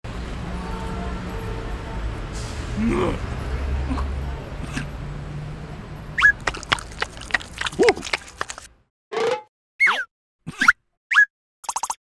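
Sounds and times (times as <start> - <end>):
rising-and-falling grunt: 2.8 - 3.2.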